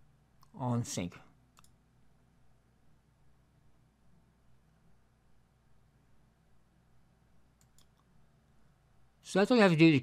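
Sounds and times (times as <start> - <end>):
computer mouse click: 1.5 - 1.8, 7.6 - 8.1.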